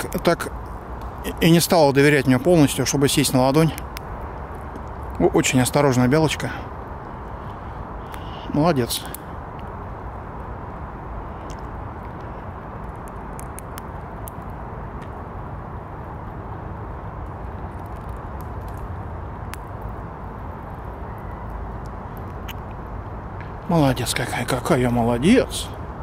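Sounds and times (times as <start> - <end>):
squirrel cracking nut shells: 0.1 - 15.2, 17.1 - 24.8.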